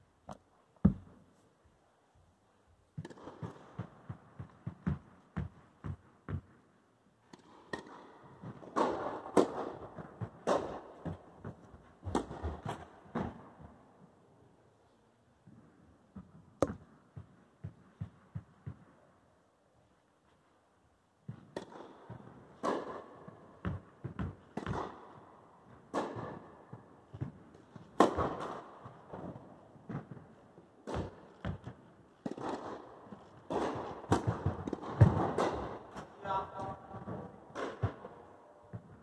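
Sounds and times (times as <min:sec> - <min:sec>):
tennis balls bouncing on court: 0:00.3 - 0:01.2, 0:02.9 - 0:13.8, 0:16.1 - 0:19.0, 0:21.2 - 0:39.0
tennis balls struck by rackets: 0:00.3 - 0:01.3, 0:02.9 - 0:13.8, 0:16.1 - 0:19.0, 0:21.2 - 0:39.0.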